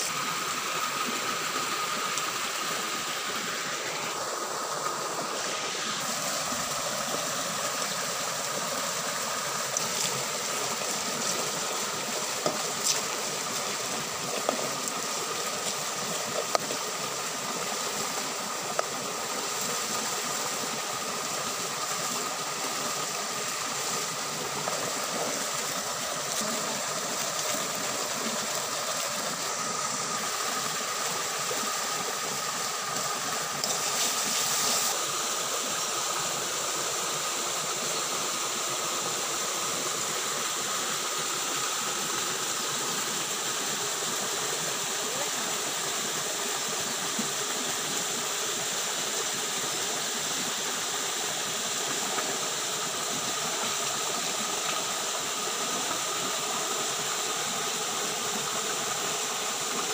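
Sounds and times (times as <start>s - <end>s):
stream running over rocks: 0.0s - 59.9s.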